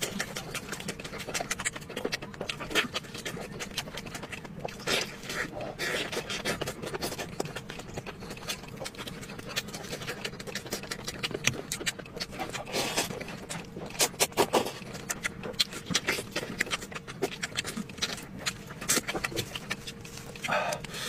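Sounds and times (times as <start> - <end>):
wet chewing and smacking: 0.0 - 21.0.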